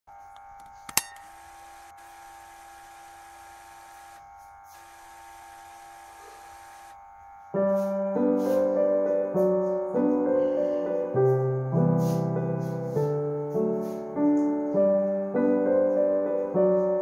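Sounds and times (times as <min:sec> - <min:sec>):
electronic buzzing tone: 0:00.1 - 0:07.6
sharp click: 0:00.4 - 0:01.4
piano music: 0:07.6 - 0:17.0.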